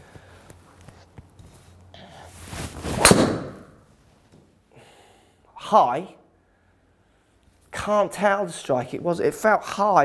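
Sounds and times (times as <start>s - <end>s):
golf club swing whoosh: 2.4s - 3.8s
clubhead striking golf ball: 2.9s - 3.7s.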